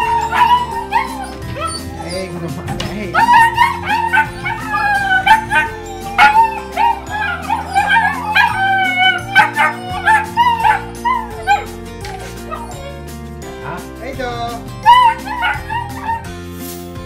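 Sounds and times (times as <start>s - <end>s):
puppies whining and yipping: 0.0s - 13.3s, 14.8s - 16.4s
background music with low notes: 0.0s - 17.0s.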